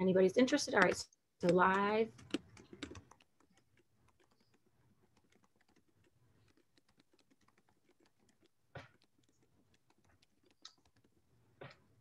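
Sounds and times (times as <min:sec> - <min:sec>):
computer keyboard typing: 0:00.6 - 0:11.9.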